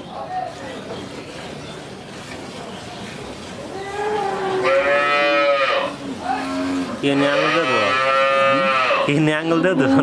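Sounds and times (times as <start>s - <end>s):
cow mooing: 4.0s - 9.2s.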